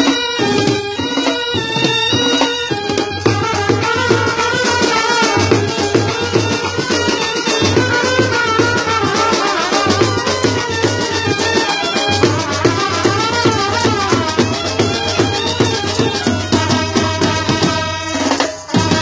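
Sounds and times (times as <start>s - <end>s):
brass band melody: 0.0s - 19.0s
steady drum beat: 0.0s - 19.0s.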